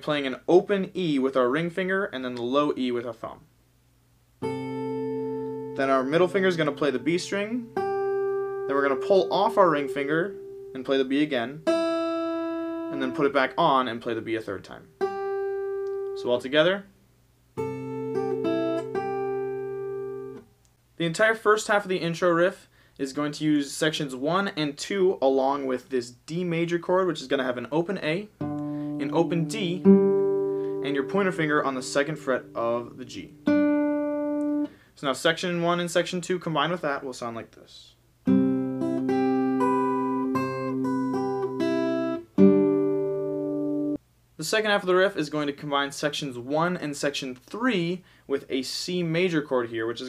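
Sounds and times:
fingerpicked acoustic guitar: 4.4 - 10.7, 11.6 - 13.3, 15.0 - 16.2, 17.6 - 20.4, 28.4 - 34.8, 38.2 - 44.0
guitar chord ringing: 4.4 - 13.4, 15.0 - 16.2, 17.6 - 20.4, 28.4 - 34.7, 38.3 - 44.0.

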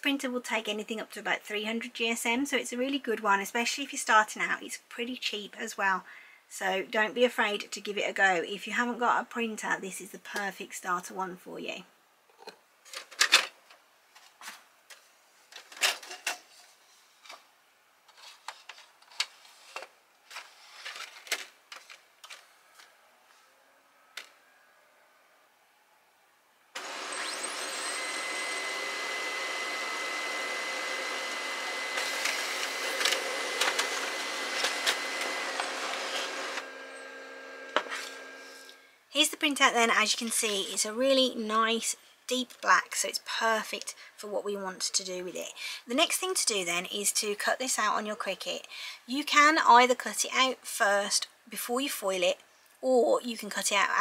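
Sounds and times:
laser printer running with whine: 26.8 - 38.7.

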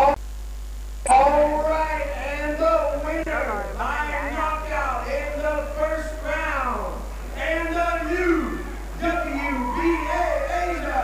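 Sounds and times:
person narrating: 1.1 - 11.0.

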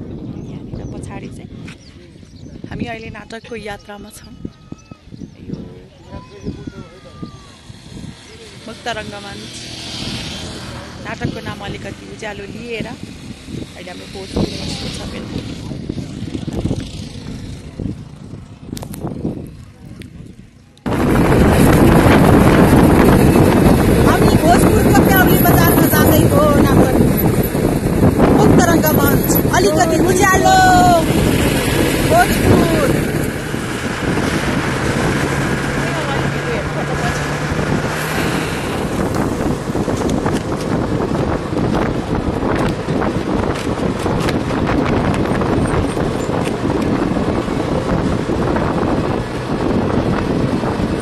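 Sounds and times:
vehicle engine and road noise: 0.0 - 51.0
wind buffeting microphone: 0.0 - 51.0
voices: 0.3 - 18.5, 22.6 - 40.6.

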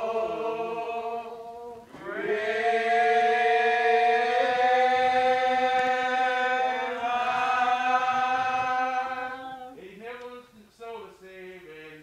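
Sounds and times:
slow hymn singing: 0.0 - 10.6.

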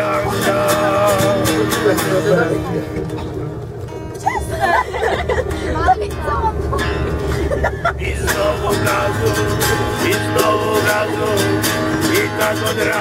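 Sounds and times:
group singing: 0.0 - 2.4, 7.8 - 13.0
low hum of bus: 0.0 - 13.0
strummed acoustic guitar: 0.0 - 13.0
voices chattering: 0.0 - 13.0.

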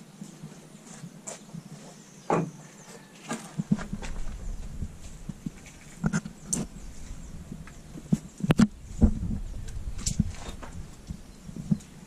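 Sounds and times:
boots on block walls: 0.4 - 11.9
wood being handled: 3.2 - 12.0
low rumble: 3.8 - 11.6.

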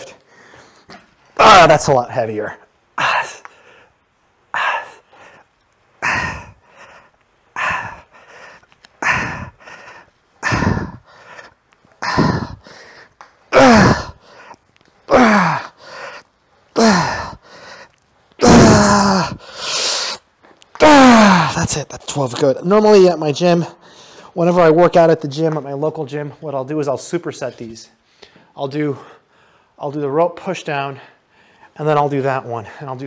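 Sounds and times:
man breathing out forcefully: 3.0 - 17.9, 18.5 - 20.2
man groaning with strain: 10.4 - 11.0, 12.0 - 12.6, 13.5 - 14.2, 15.1 - 15.8, 16.8 - 17.4, 18.4 - 19.4, 20.8 - 21.6.

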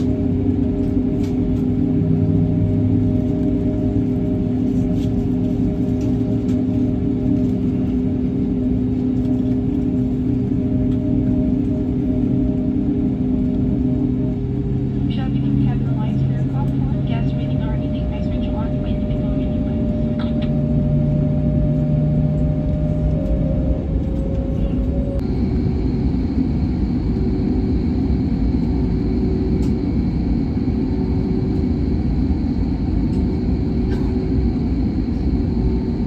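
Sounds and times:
jet engines humming in cabin: 0.0 - 36.0.

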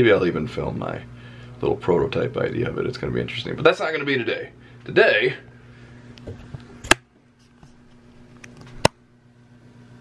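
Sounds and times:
electrical hum from lights: 0.0 - 10.0.

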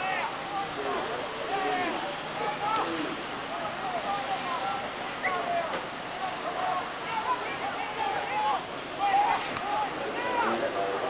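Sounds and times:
people calling and chattering: 0.0 - 11.0
video tape hiss: 0.0 - 11.0.

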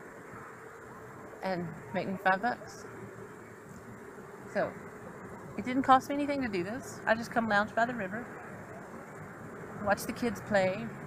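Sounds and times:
faint outdoor hiss: 0.0 - 11.0
flying insects buzzing: 0.0 - 11.0.

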